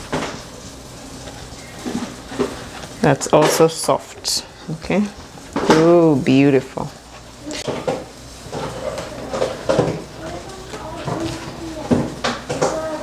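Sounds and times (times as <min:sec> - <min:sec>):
woman's wordless voice: 0:03.0 - 0:07.0.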